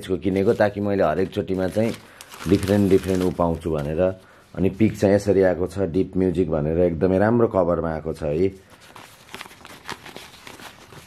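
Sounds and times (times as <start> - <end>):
paper card rustling: 0.2 - 4.2, 8.6 - 11.0.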